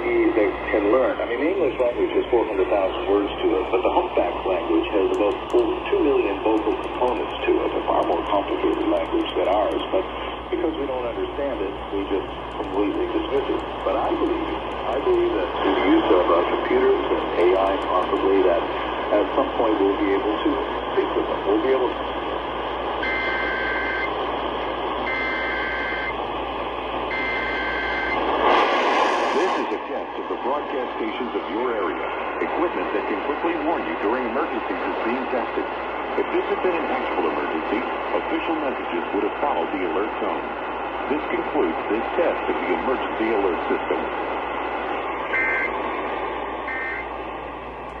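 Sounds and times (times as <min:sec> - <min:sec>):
radio static hiss: 0:00.0 - 0:48.0
buzzy two-tone data bursts: 0:25.1 - 0:26.2, 0:45.3 - 0:45.8, 0:46.7 - 0:47.1.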